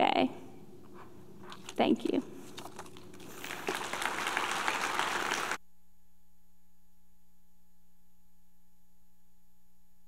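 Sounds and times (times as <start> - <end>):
audience applauding: 3.2 - 5.6.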